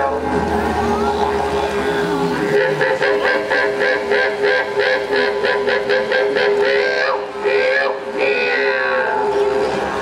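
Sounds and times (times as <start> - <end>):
didgeridoos droning with rhythmic pulses: 0.0 - 10.0.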